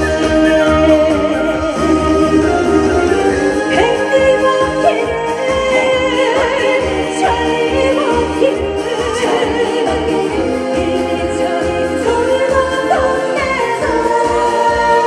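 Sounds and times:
amplified backing music: 0.0 - 15.0
woman singing into microphone: 3.6 - 15.0.

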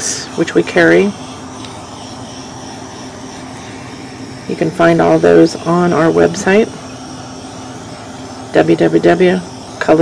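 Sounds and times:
heat gun blowing: 0.0 - 10.0.

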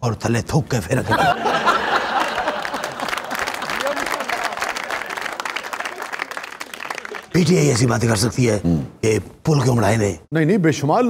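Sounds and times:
audience applauding: 1.4 - 7.8.

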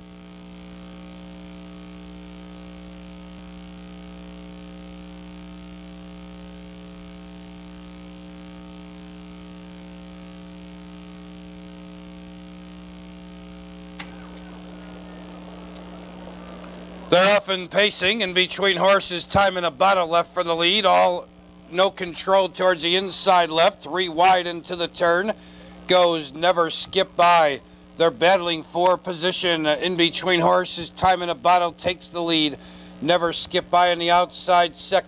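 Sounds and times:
electrical mains hum: 0.0 - 35.0.

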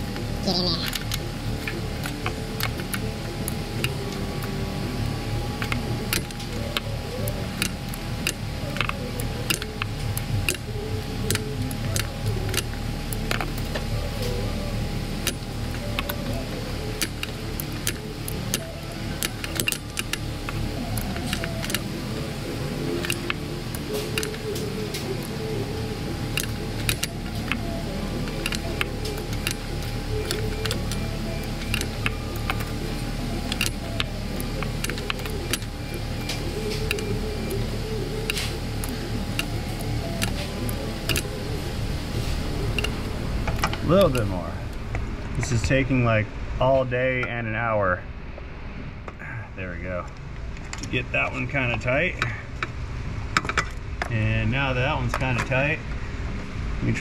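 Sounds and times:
background music: 0.0 - 48.3
hand ratchet clicking: 5.6 - 14.4, 15.2 - 21.9, 23.0 - 25.3, 26.3 - 32.8, 33.5 - 37.6, 38.2 - 41.5.

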